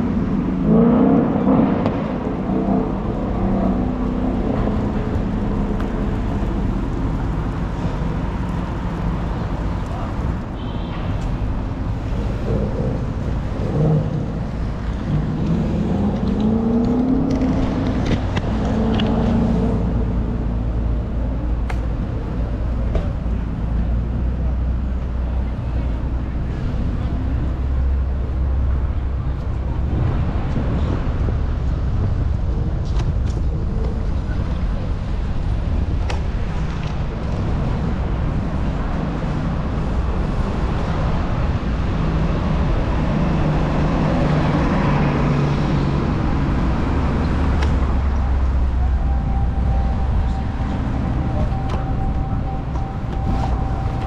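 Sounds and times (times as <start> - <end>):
city street traffic: 0.0 - 54.0
wind rumble on microphone: 0.0 - 54.0.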